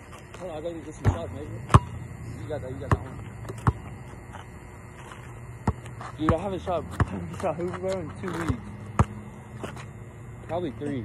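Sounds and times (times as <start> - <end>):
steady low hum: 0.0 - 11.0
basketball bouncing on court: 1.0 - 2.0, 2.7 - 4.0, 5.6 - 9.8.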